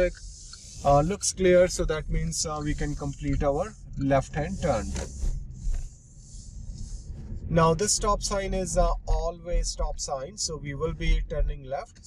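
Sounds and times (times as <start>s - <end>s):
faint hiss: 0.0s - 10.6s
car engine and road rumble: 0.0s - 12.0s.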